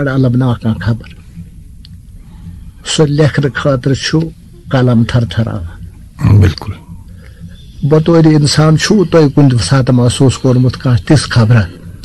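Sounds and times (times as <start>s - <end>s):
man speaking: 0.0s - 1.2s, 2.8s - 7.0s, 7.8s - 11.8s.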